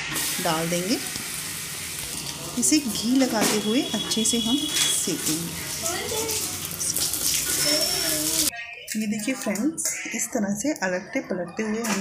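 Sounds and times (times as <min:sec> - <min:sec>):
ghee sizzling on hot griddle: 0:00.0 - 0:08.5.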